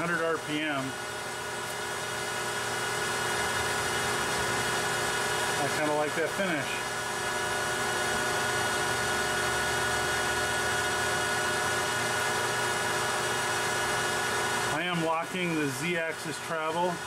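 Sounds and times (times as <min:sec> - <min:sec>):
metal lathe whining: 0:00.0 - 0:17.0.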